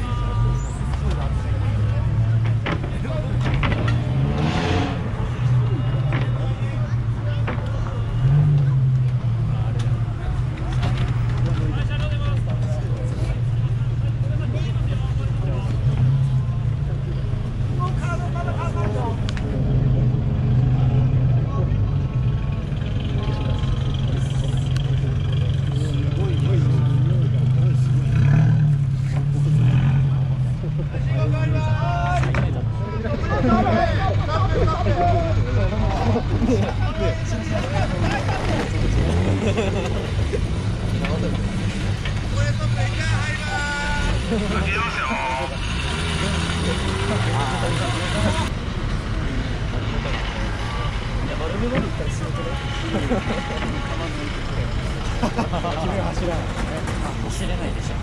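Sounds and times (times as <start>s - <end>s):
people talking: 0.0s - 20.2s, 20.9s - 28.3s, 29.2s - 48.6s, 49.2s - 58.0s
car engines droning: 0.0s - 58.0s
car engine revs: 0.8s - 7.2s, 7.8s - 18.0s, 18.8s - 31.5s, 32.2s - 55.2s.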